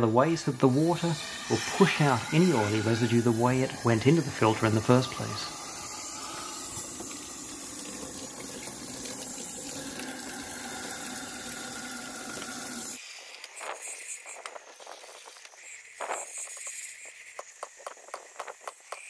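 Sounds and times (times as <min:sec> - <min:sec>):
water rushing and splashing into tub: 0:00.8 - 0:13.0.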